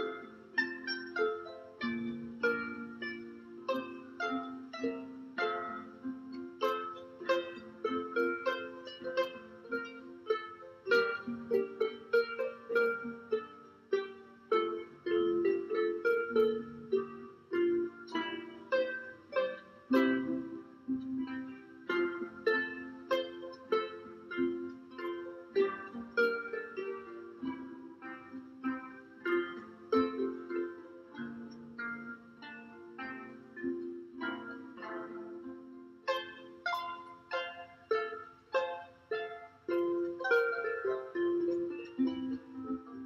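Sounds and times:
harps playing folk tune: 0:00.0 - 0:43.0.

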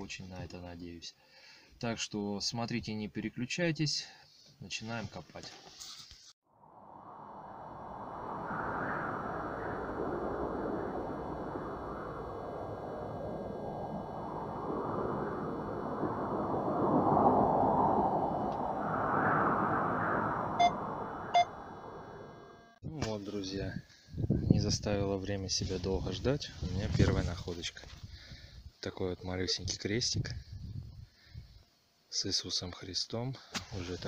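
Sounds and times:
rushing wind-like drone: 0:06.5 - 0:22.8
faint steady high tones: 0:20.4 - 0:22.8
sonar-like pings: 0:20.6 - 0:22.8.

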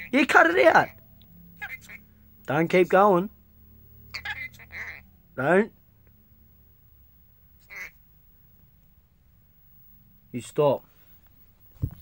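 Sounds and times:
parrot squawk: 0:01.6 - 0:02.1, 0:04.1 - 0:05.1, 0:07.6 - 0:08.0.

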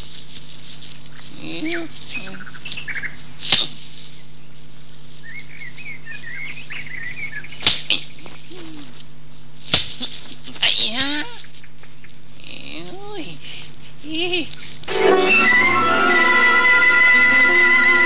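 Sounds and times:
film soundtrack hiss and hum: 0:00.0 - 0:18.0.

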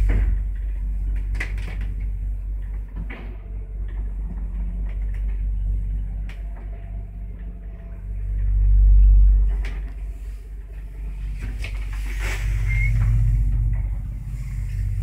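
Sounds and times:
lift rumbling in shaft: 0:00.0 - 0:15.0
high squeak: 0:12.4 - 0:13.5.

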